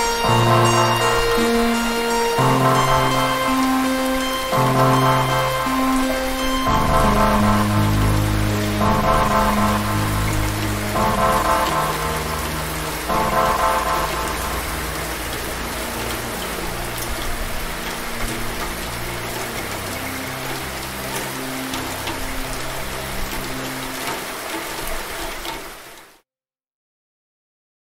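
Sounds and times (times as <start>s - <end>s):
synthesizer music: 0.0s - 24.0s
steady rain: 0.0s - 26.2s.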